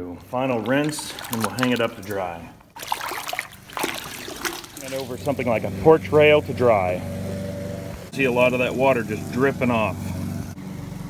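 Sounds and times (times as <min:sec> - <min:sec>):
water splashing in a bucket: 0:00.2 - 0:05.6
water streaming off mat: 0:00.5 - 0:05.3.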